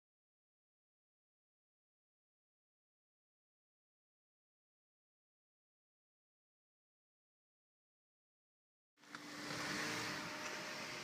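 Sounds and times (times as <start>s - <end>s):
vehicle tyre and engine rushing: 9.0s - 11.0s.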